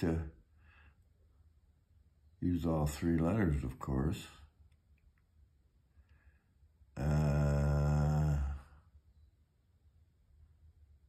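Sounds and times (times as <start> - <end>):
man's low wordless vocal sound: 7.0 - 8.7.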